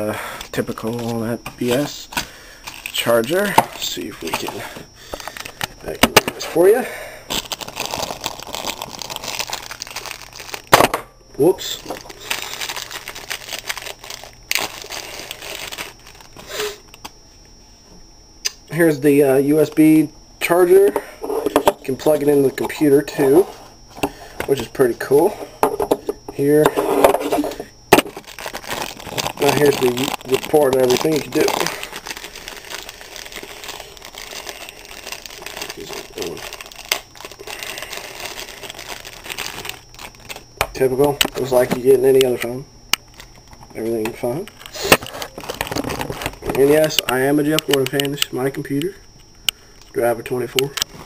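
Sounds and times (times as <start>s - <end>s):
plastic wrapping crinkling: 0.5s - 6.0s, 7.3s - 10.8s, 11.7s - 17.1s, 26.8s - 40.6s, 43.1s - 48.1s.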